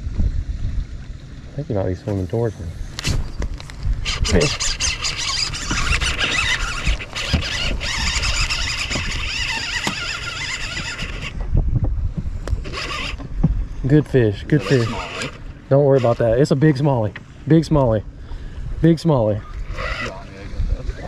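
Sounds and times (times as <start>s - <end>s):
fishing reel drag buzzing: 2.9s - 11.4s, 12.5s - 13.2s, 14.6s - 16.6s, 19.4s - 20.3s.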